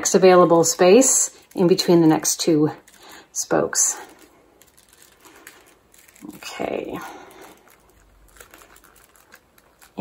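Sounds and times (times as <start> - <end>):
basket strands rustling and clicking: 0.4 - 10.0.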